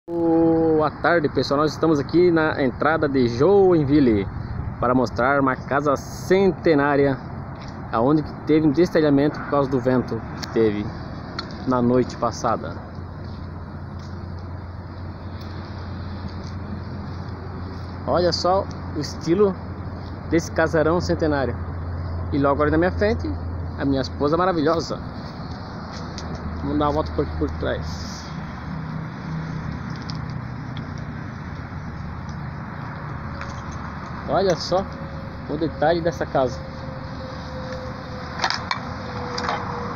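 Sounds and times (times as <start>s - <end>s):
road traffic rumble: 0.0s - 39.9s.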